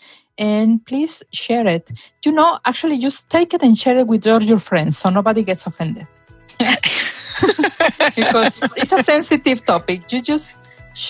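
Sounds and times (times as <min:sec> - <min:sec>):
woman laughing: 0:06.5 - 0:09.8.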